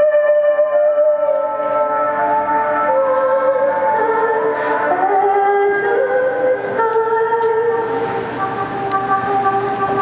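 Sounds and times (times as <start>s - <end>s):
band sustained chords drone: 0.0s - 10.0s.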